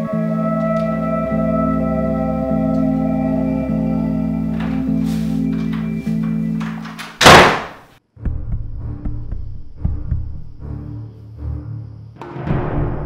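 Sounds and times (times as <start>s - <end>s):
organ-like drone chord: 0.0s - 6.9s.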